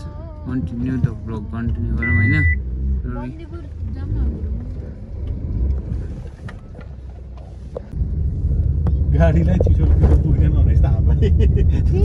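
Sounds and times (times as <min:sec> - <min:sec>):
car engine and road noise: 0:00.0 - 0:12.0
loud low rumble: 0:07.6 - 0:12.0.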